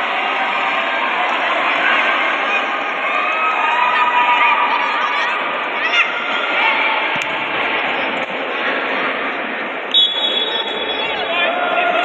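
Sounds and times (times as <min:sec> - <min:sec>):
spectators shouting and cheering: 0:00.0 - 0:12.0
shrill whistle blast: 0:09.9 - 0:11.3.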